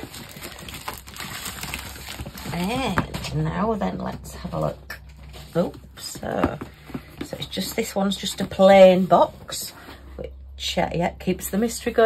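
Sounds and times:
plastic bag rustling and crinkling: 0.0 - 10.1.

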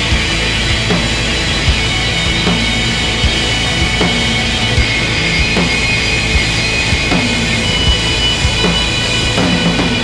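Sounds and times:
post-rock band playing live: 0.0 - 10.0.

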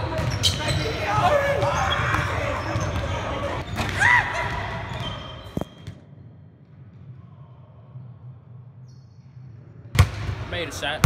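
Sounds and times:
basketballs bouncing on wooden floor: 0.0 - 5.6.

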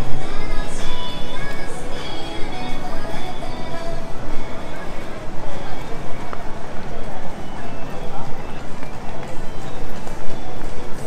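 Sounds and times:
music from storefronts: 0.0 - 11.0
passers-by talking: 0.0 - 11.0.

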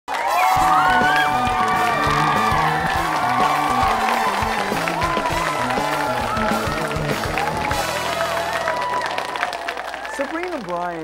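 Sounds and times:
music with beat and bass line: 0.6 - 8.8.

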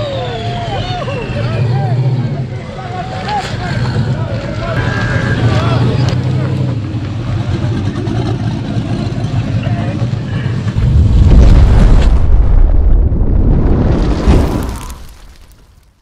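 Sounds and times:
crowd shouting: 0.0 - 6.2.

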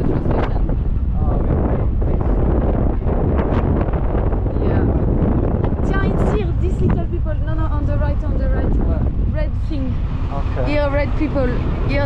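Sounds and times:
wind rushing over microphone: 0.0 - 12.0
voices talking: 5.8 - 12.0.

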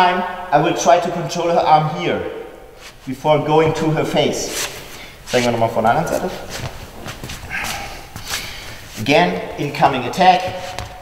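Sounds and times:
footsteps on sports hall floor: 2.8 - 11.0
breathy sniff or exhale: 4.7 - 5.3, 6.4 - 9.0.

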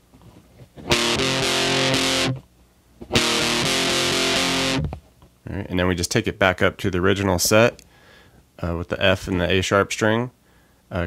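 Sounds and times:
distorted electric guitar strumming: 0.8 - 2.4, 3.0 - 5.0.

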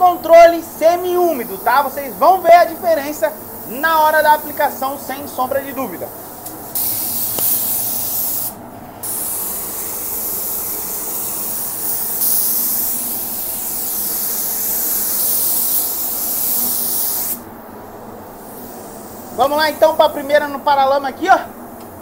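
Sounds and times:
paint spray gun hissing: 0.0 - 20.9.

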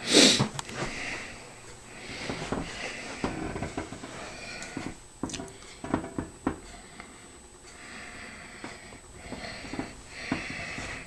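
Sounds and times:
person sniffing sharply: 0.0 - 0.5.

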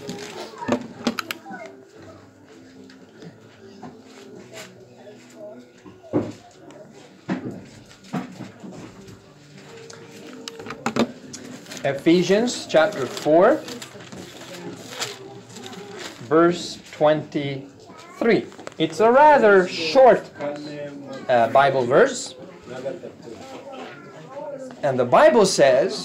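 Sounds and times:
faint murmuring voices: 0.0 - 26.0
book pages rustling: 9.4 - 17.0.

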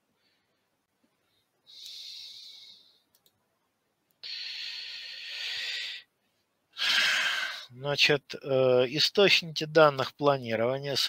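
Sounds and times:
faint clicks: 1.8 - 2.0, 2.9 - 4.2.

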